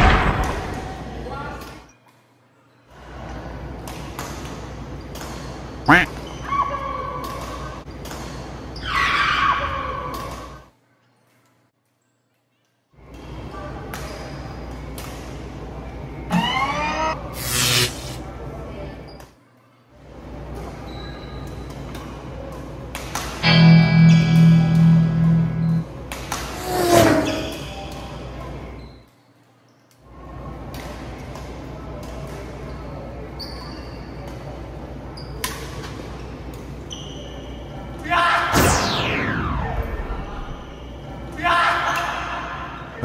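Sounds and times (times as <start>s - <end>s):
pitched music sting: 23.4s - 25.9s
falling whoosh: 38.5s - 40.9s.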